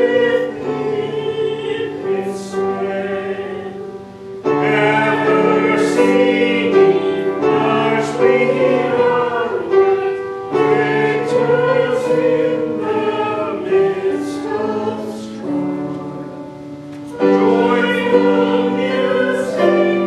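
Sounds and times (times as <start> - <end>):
choir singing: 0.0 - 20.0.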